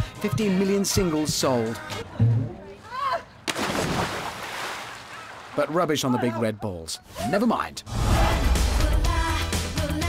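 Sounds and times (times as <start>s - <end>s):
loud splash into pool: 3.5s - 5.6s
churning water: 3.5s - 6.2s.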